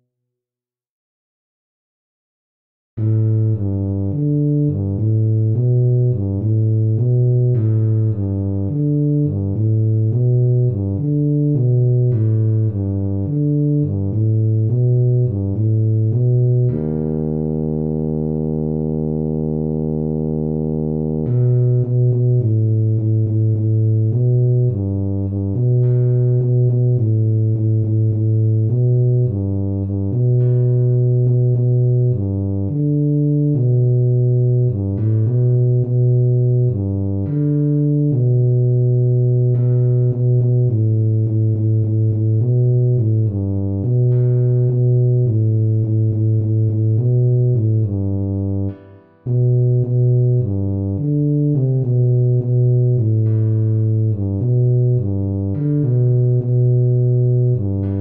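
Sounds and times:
tuba melody: 3.0 - 58.0.

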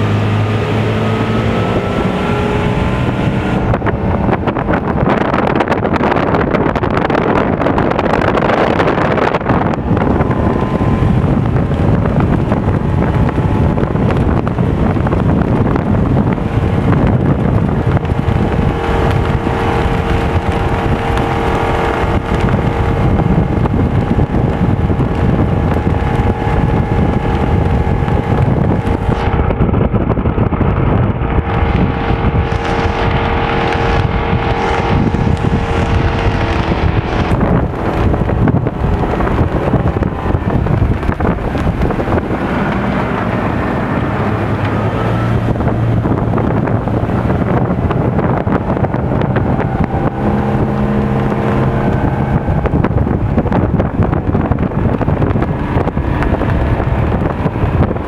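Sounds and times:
boat engine drone: 0.0 - 58.0
rush of boat wake: 0.0 - 58.0
wind buffeting microphone: 0.0 - 58.0.

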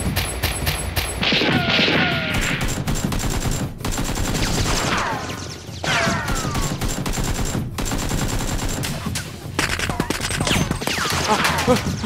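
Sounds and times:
rapid gunshots: 0.0 - 12.0.

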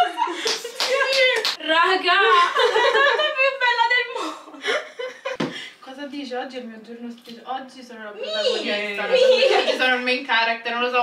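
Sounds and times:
women's voices: 0.0 - 4.6, 5.8 - 11.0.

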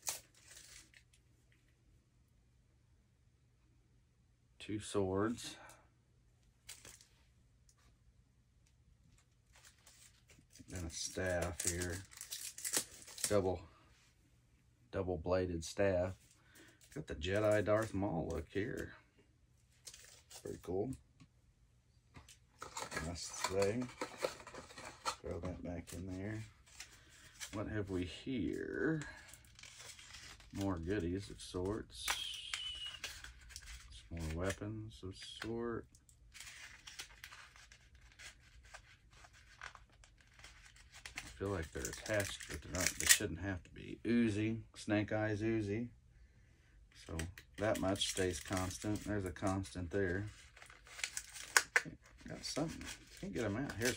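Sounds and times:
cardboard packaging rustling: 9.1 - 13.4, 22.2 - 34.6, 36.2 - 43.2, 47.4 - 53.9
faint plastic clicks and rustles: 22.1 - 25.4.

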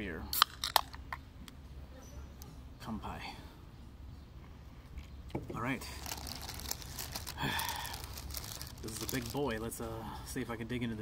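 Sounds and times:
paper wrapper crinkling: 6.0 - 9.6.

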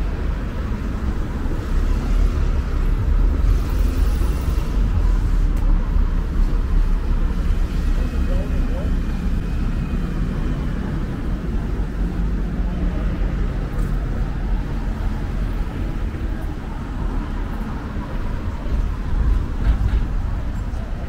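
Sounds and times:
bus diesel engine rumbling: 0.0 - 21.0
city street traffic: 0.0 - 21.0.

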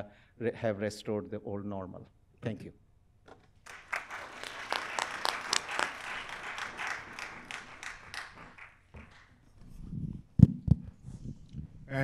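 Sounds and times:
audience applauding: 3.6 - 9.4.

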